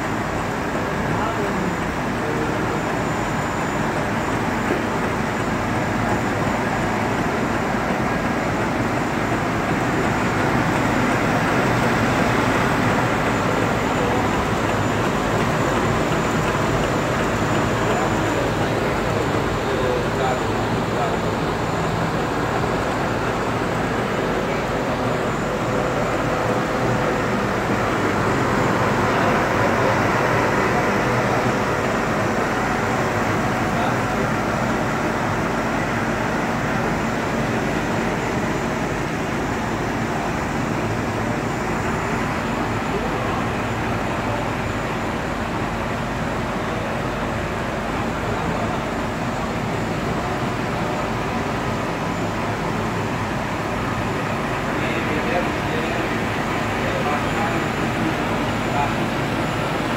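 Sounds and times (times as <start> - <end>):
printing press running: 0.0 - 59.9.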